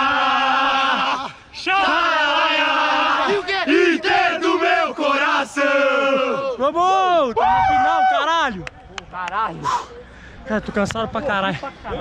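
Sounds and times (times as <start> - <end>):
young men chanting and shouting: 0.0 - 8.6.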